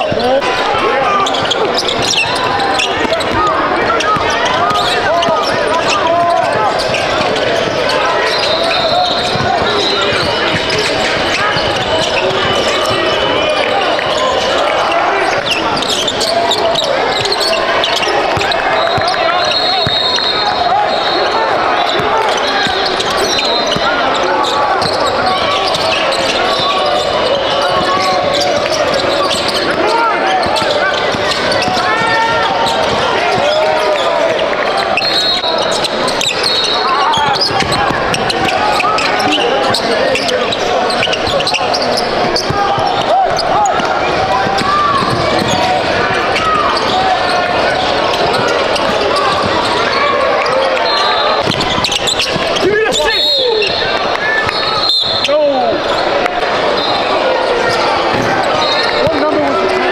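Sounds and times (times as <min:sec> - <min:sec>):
hubbub of many voices: 0:00.0 - 0:59.9
sneakers squeaking: 0:00.0 - 0:59.9
basketball bouncing: 0:01.2 - 0:13.2, 0:15.3 - 0:19.2, 0:21.8 - 0:24.0, 0:24.8 - 0:33.6, 0:37.1 - 0:40.3, 0:40.9 - 0:49.8, 0:51.4 - 0:52.6.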